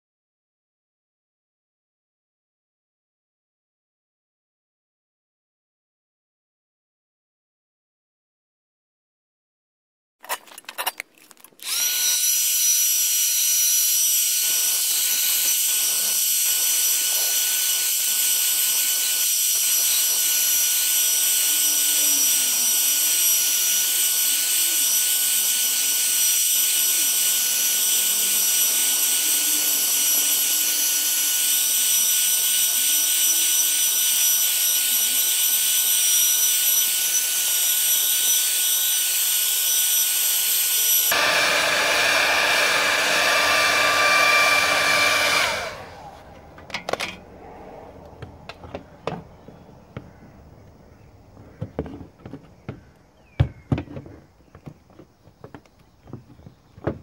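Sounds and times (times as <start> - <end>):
hair dryer blowing: 11.6 - 35.8, 39.6 - 47.2.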